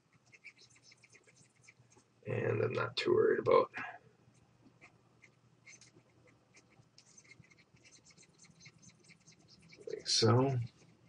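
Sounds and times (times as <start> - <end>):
stylus scratching on graphics tablet: 0.0 - 2.0, 4.8 - 11.0.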